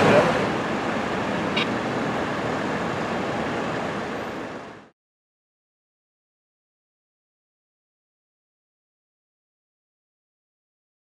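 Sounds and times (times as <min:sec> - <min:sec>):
street noise: 0:00.0 - 0:04.9
vehicle engine hum: 0:00.0 - 0:05.0.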